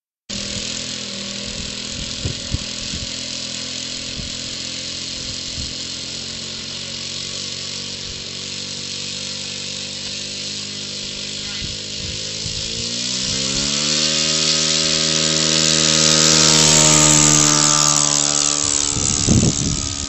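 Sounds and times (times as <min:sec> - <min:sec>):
model plane engine running: 0:00.3 - 0:20.0
propeller hiss: 0:00.3 - 0:20.0.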